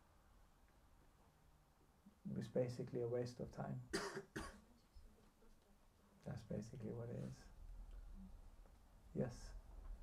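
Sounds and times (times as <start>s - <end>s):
man coughing: 3.9s - 4.6s.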